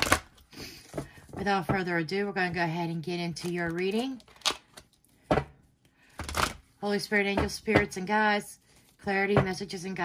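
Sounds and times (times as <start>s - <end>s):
cards slapping: 0.0s - 1.0s.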